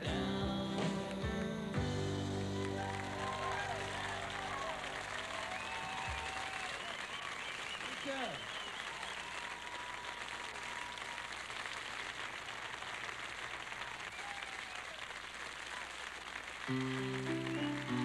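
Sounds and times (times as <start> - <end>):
audience applauding: 2.2 - 18.0.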